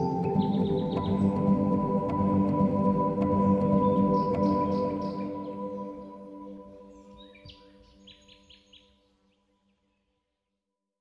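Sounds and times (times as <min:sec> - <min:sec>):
ambient music with bowl-like tones: 0:00.0 - 0:10.1
small bird chirping: 0:06.8 - 0:09.0.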